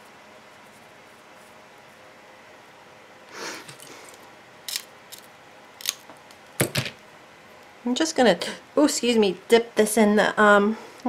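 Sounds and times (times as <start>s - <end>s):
soft rustle: 0.0s - 2.1s
sharp clicks and snaps: 4.7s - 6.4s.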